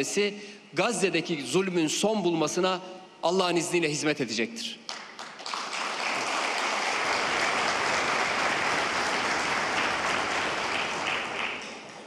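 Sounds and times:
audience applauding: 4.9 - 12.0.

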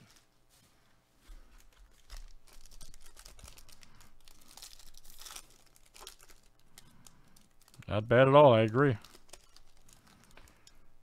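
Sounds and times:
foil wrapper tearing and crinkling: 1.6 - 10.7.

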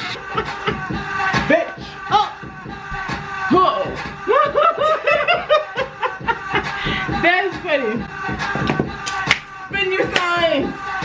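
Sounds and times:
women laughing: 0.0 - 1.3, 4.2 - 7.2
background music: 0.0 - 11.0.

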